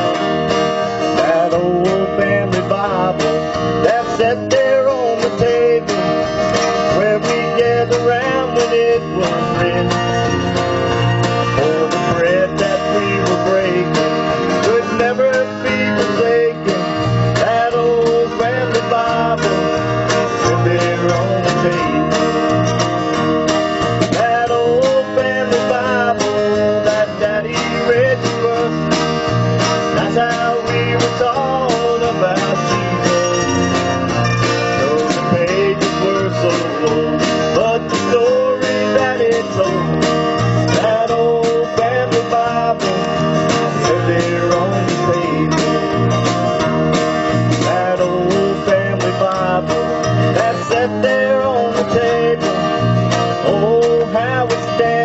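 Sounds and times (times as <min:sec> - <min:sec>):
live country band playing: 0:00.0 - 0:55.0.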